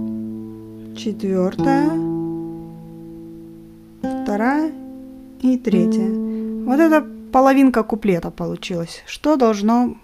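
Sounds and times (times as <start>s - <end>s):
classical guitar fingerstyle: 0.0s - 8.8s.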